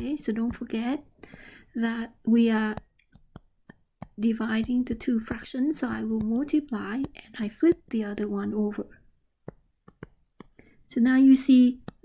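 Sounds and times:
person speaking: 0.0s - 1.1s, 1.7s - 9.0s, 10.0s - 12.0s
stylus tapping on tablet screen: 0.0s - 12.0s.

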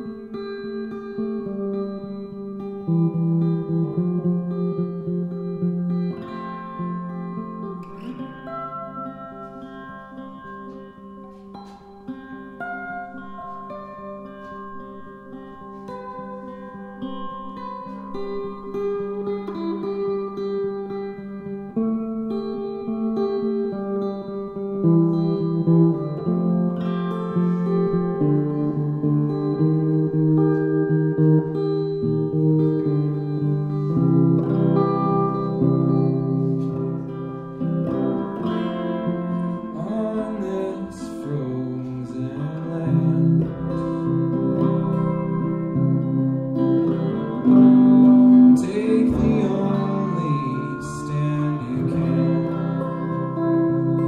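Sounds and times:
guitar sustained chords: 0.0s - 54.0s.

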